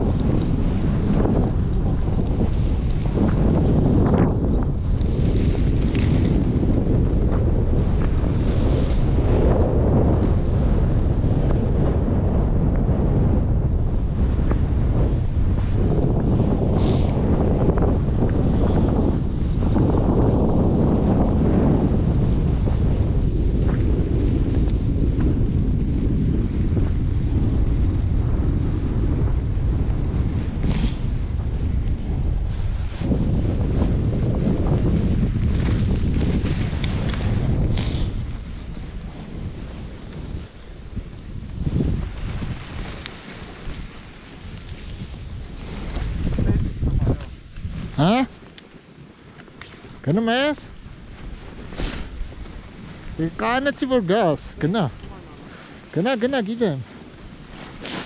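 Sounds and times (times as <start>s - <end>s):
wind buffeting microphone: 0.0s - 58.0s.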